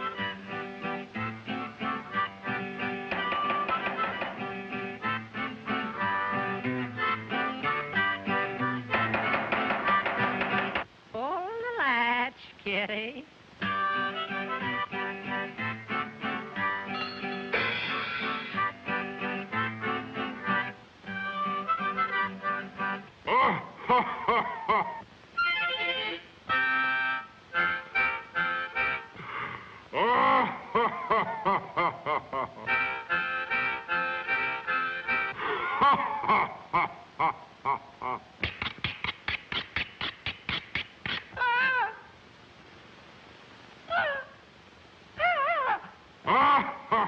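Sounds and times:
harmonica chords: 0.0 - 10.8, 13.6 - 23.1, 25.4 - 29.2, 32.6 - 35.5
acoustic guitar picking: 0.5 - 10.8.

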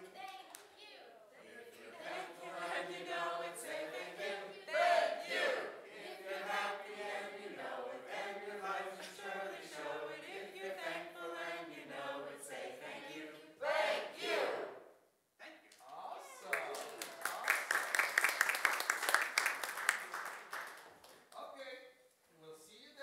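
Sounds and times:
group of voices singing: 1.4 - 14.8.

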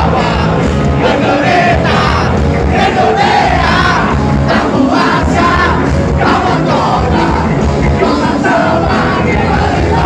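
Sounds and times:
loud live rock band: 0.0 - 10.0.

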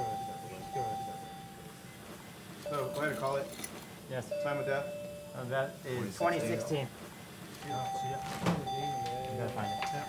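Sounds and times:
patient monitor alarm tone: 0.0 - 2.0, 2.6 - 7.0, 7.6 - 10.0.

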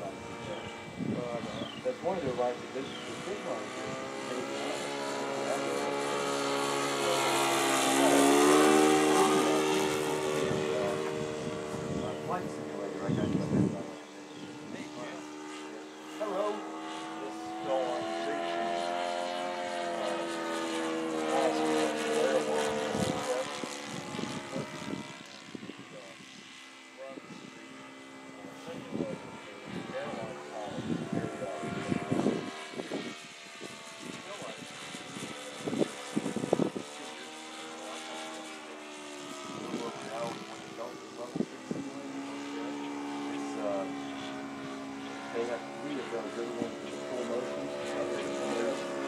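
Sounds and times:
model plane engine in flight: 0.0 - 49.0.

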